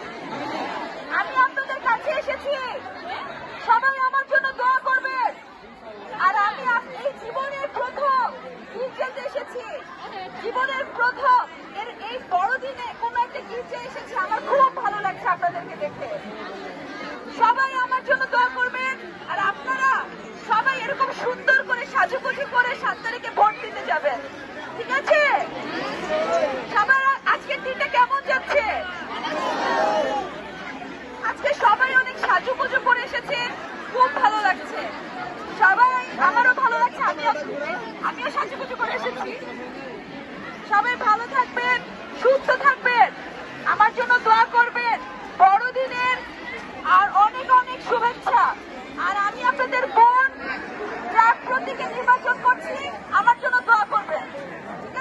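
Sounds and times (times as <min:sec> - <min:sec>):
woman speaking through a microphone: 0:00.0 - 0:29.1, 0:31.1 - 0:55.0
crowd chatter: 0:00.0 - 0:55.0
woman speaking into microphone: 0:24.8 - 0:25.5, 0:26.7 - 0:28.9, 0:31.2 - 0:34.9, 0:35.5 - 0:39.4, 0:40.7 - 0:50.4.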